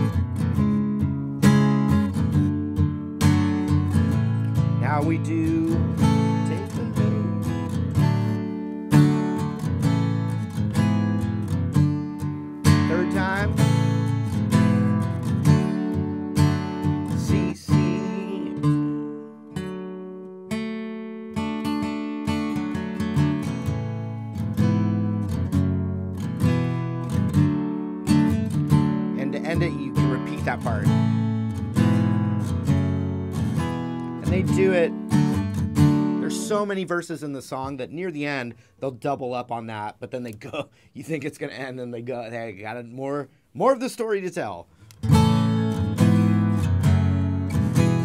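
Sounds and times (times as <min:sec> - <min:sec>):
acoustic guitar strumming chords: 0:00.0 - 0:38.7, 0:44.7 - 0:48.0.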